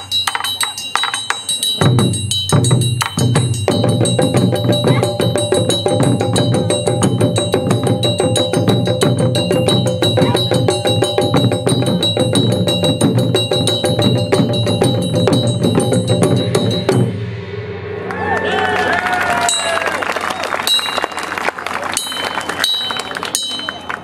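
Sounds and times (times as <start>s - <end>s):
barrel drums beating: 0.0s - 17.2s
steady ringing tone: 0.0s - 17.8s.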